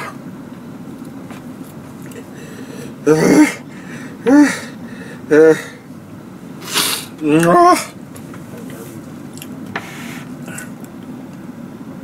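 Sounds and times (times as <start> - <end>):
man clearing his throat: 3.0 - 3.6, 4.2 - 5.8.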